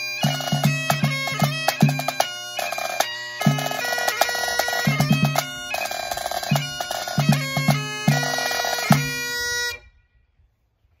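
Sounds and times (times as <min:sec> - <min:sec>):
bagpipes holding a note: 0:00.0 - 0:10.0.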